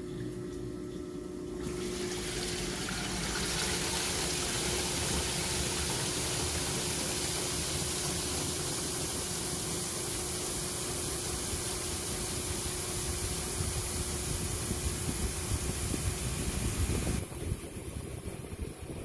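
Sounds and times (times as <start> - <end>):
motor hum: 0.0 - 19.0
washer basket spinning up: 1.6 - 19.0.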